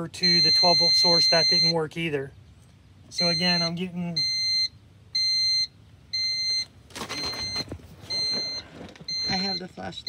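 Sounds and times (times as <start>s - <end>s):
electronic alarm beeping: 0.2s - 1.8s, 3.2s - 10.0s
rustling handling noise: 6.5s - 9.1s.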